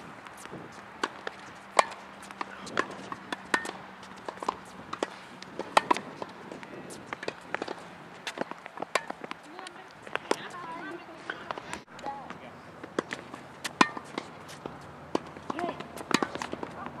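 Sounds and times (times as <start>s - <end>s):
tennis balls struck and bouncing: 0.0s - 17.0s.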